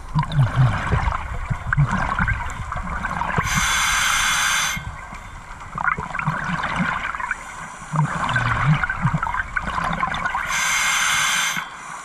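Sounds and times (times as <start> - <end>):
small bubbling: 0.0 - 4.2, 4.8 - 10.5
scuba regulator hissing: 3.4 - 4.8, 10.4 - 11.8.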